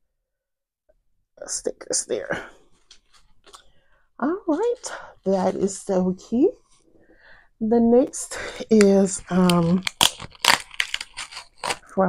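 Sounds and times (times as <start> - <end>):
packaging crinkling: 8.4 - 11.9.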